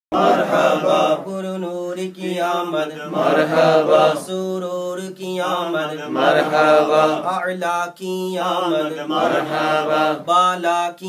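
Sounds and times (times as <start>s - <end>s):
men chanting: 0.1s - 11.0s.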